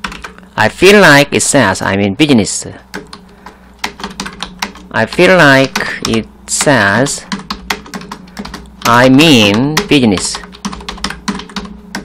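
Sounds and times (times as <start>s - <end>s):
computer keyboard typing: 0.0s - 0.4s, 2.9s - 12.0s.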